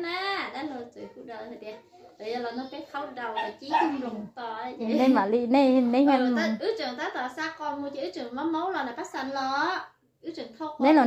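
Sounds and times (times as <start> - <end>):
person talking: 3.3 - 6.6.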